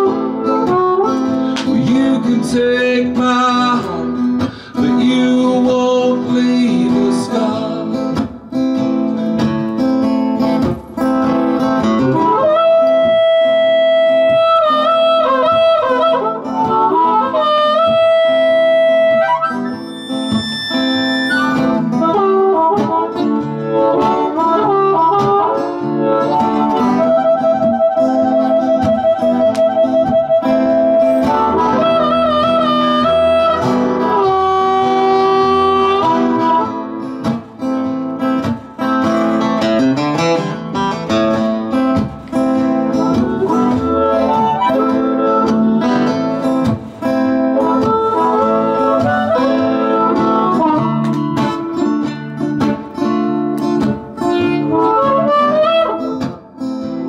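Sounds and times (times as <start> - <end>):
harmonica solo: 0.0 - 5.0, 10.4 - 57.0
acoustic guitar accompaniment: 0.0 - 57.0.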